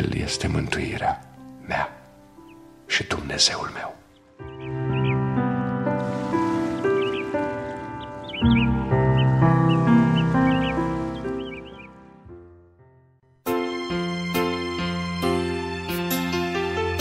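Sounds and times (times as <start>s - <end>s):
birds chirping: 0.0s - 13.0s
calm background music: 0.0s - 17.0s.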